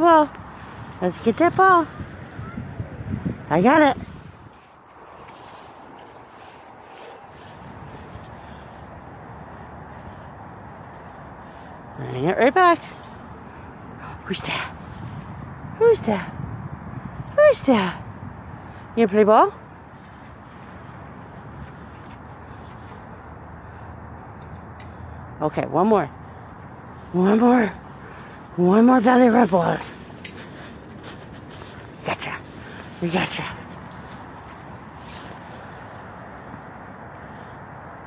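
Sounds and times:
outdoor background noise: 0:00.0 - 0:38.0.

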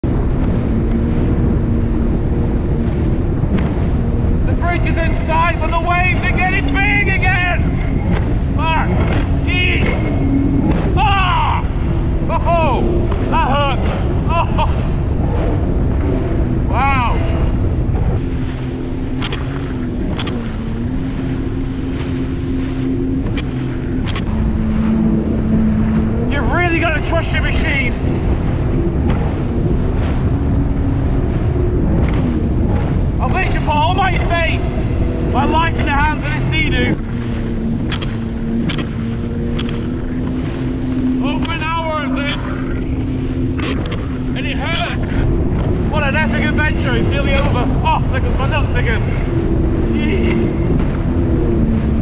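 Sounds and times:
hull splashing on waves: 0:00.0 - 0:52.0
personal watercraft engine drone: 0:00.0 - 0:52.0
wind buffeting microphone: 0:00.0 - 0:52.0.

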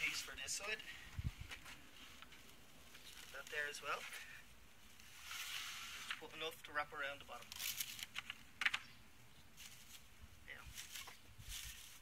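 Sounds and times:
cling film crinkling: 0:02.0 - 0:04.2, 0:07.4 - 0:08.4.

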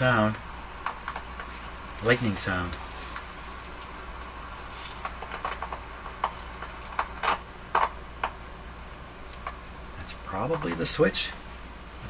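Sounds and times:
radio crackles and pops: 0:00.0 - 0:12.0
steady hum: 0:00.0 - 0:12.0.

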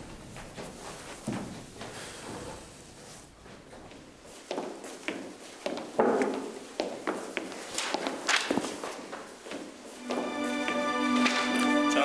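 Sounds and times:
footsteps on hard floor: 0:00.3 - 0:11.8.

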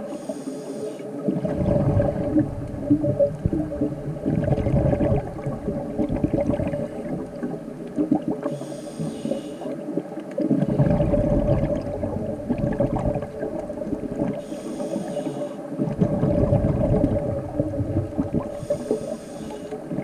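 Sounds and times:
inhalation hiss: 0:00.0 - 0:01.1, 0:08.4 - 0:09.8, 0:14.4 - 0:15.7, 0:18.5 - 0:19.8
bubbling exhalation: 0:01.2 - 0:08.4, 0:10.4 - 0:14.4, 0:15.8 - 0:19.0.

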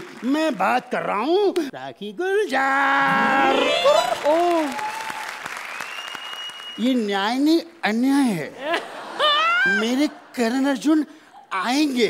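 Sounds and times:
audience applauding: 0:00.0 - 0:00.7, 0:03.2 - 0:07.1.

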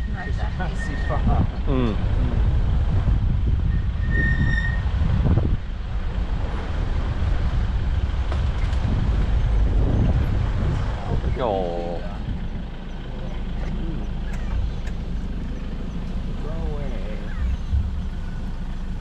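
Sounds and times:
vehicle engine running: 0:00.0 - 0:19.0
vehicle rumbling on bumpy track: 0:00.0 - 0:19.0.

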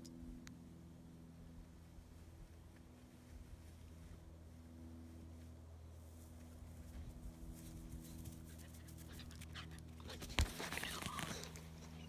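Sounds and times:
faint low hum: 0:00.0 - 0:12.0
puppy panting: 0:08.4 - 0:12.0.

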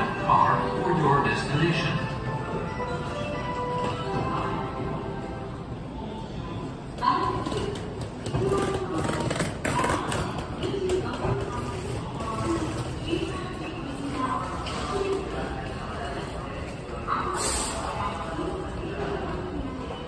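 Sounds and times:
echoing indistinct voices: 0:00.0 - 0:20.0.

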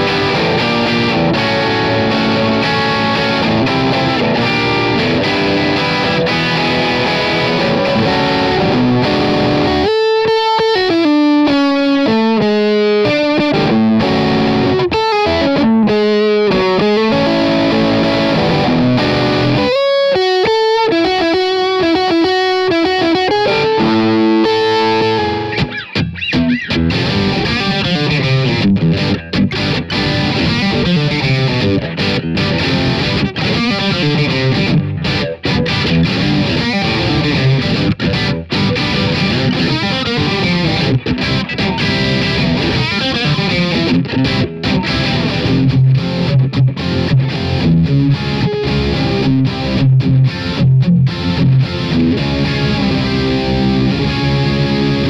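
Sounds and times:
distorted electric guitar: 0:00.0 - 0:55.0.

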